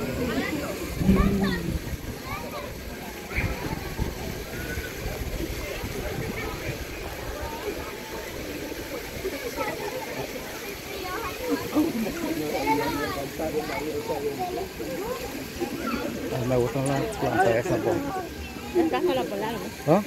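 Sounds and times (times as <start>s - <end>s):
people chattering: 0.0s - 20.0s
steady rushing noise: 0.9s - 3.0s.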